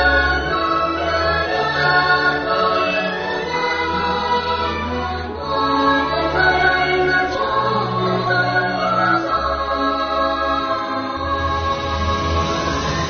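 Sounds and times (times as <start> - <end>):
musical backing: 0.0 - 13.0
voices singing held notes: 0.0 - 13.0.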